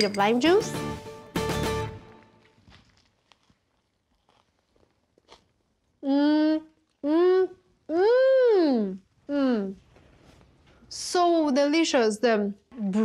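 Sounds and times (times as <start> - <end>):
crunches of food bitten: 2.6 - 5.8
woman humming mmm: 6.0 - 9.8.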